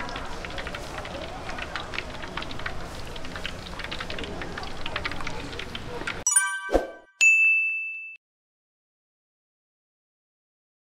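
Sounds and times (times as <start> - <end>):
notification bell ding: 6.3 - 8.2.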